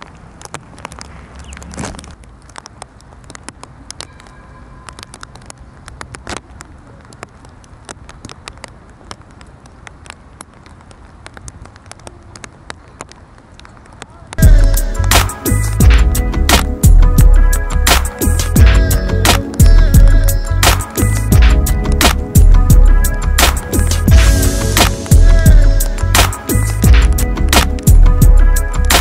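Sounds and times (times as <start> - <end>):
light rain pattering: 0.0 - 29.0.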